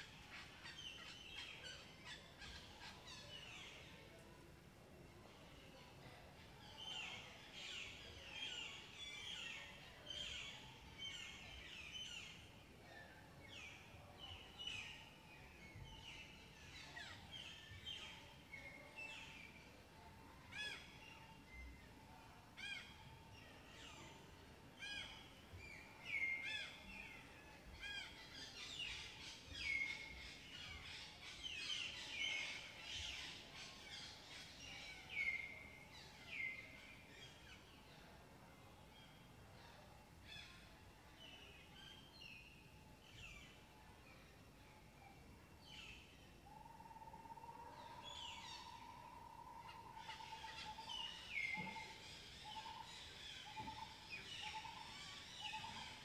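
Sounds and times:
birds chirping and calling: 0:48.0 - 0:56.0.

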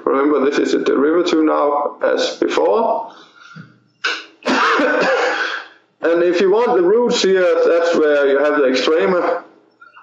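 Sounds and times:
man clearing his throat: 0:04.1 - 0:05.8.

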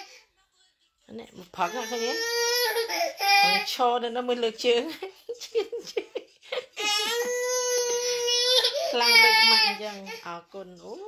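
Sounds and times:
baby crying: 0:01.6 - 0:03.8, 0:06.8 - 0:10.2.

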